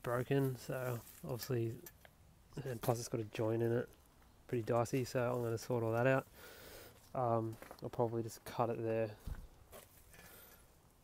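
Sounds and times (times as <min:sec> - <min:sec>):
man's voice: 0:07.2 - 0:09.2
soft low thump: 0:09.2 - 0:09.6.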